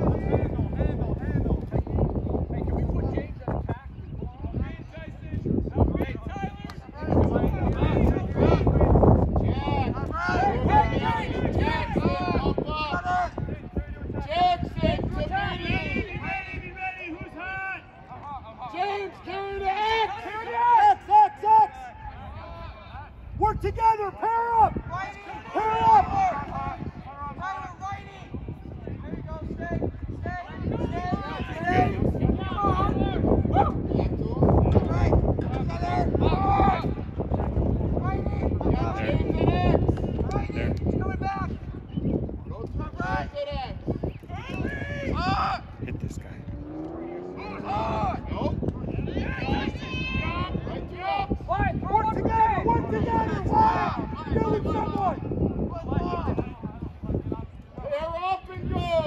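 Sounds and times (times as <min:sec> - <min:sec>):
outdoor background noise: 0:00.0 - 0:59.0
people shouting: 0:09.5 - 0:12.4, 0:23.5 - 0:26.8
man shouting: 0:23.4 - 0:26.4.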